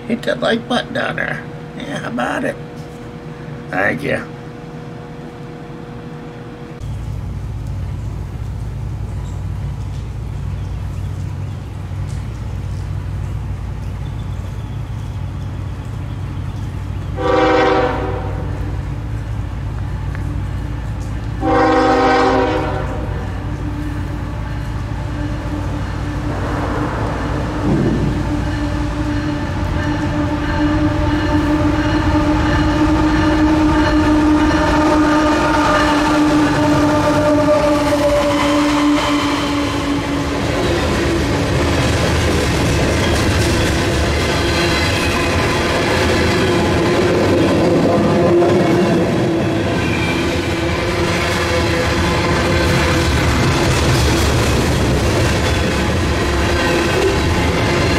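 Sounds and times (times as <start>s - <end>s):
train rumbling and clattering past: 0.0s - 57.9s
locomotive horn blasts: 17.1s - 18.8s, 20.1s - 40.9s, 47.8s - 53.1s.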